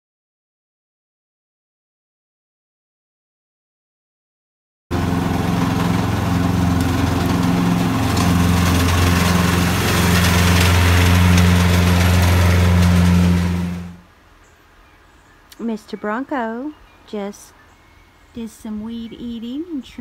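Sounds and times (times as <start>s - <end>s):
riding lawn mower engine: 4.9s - 14.1s.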